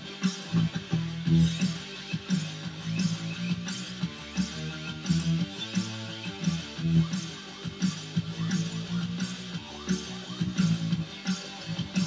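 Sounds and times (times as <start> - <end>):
drum and bass track: 0.0 - 12.0
electric bass guitar: 0.0 - 12.0.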